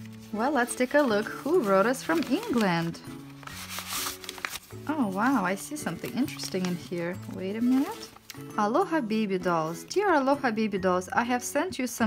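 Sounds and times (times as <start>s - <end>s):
paper rustling and crinkling: 0.0s - 8.5s
soft background music: 0.0s - 12.0s.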